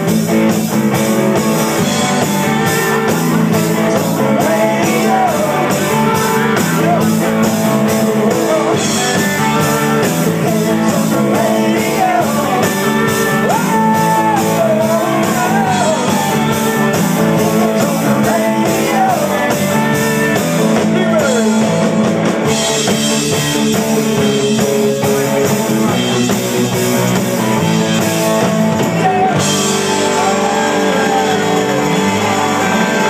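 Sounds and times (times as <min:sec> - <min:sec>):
bending guitar lead line: 0:00.0 - 0:33.0
live rock band playing: 0:00.0 - 0:33.0.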